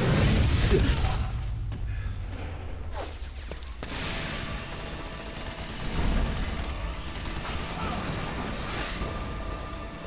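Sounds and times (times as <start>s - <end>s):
action film music: 0.0s - 10.0s.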